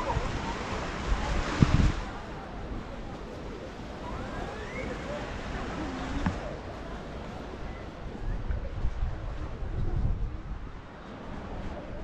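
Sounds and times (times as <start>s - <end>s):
faint distant voices: 0.0s - 12.0s
wind and surf hiss: 0.0s - 12.0s.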